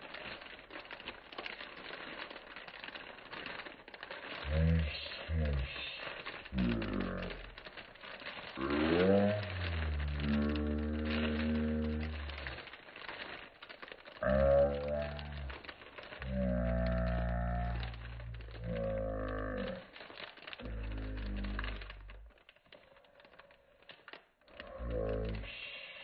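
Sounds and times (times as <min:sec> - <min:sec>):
plastic packaging crinkling: 0:00.0 - 0:26.0
person humming: 0:04.5 - 0:06.0, 0:06.6 - 0:07.5, 0:08.6 - 0:12.6, 0:14.2 - 0:15.6, 0:16.2 - 0:19.8, 0:20.6 - 0:22.2, 0:24.7 - 0:25.9.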